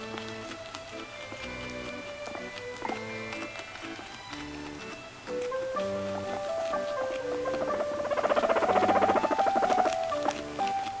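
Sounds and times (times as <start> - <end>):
background music: 0.0 - 11.0
guinea pig rapid pulsing call: 0.0 - 11.0.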